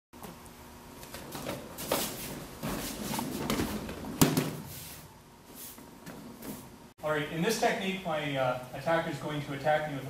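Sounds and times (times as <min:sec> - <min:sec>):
scuffing and rustling of uniforms: 0:01.0 - 0:06.8.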